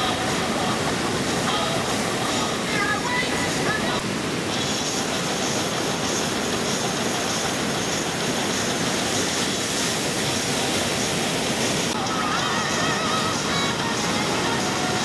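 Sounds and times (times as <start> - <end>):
ocean surf breaking: 0.0 - 15.0.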